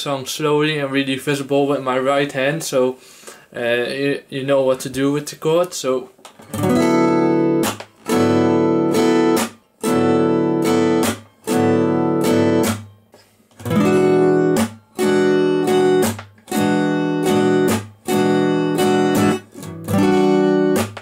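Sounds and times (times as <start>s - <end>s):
acoustic guitar strummed slowly: 6.4s - 21.0s.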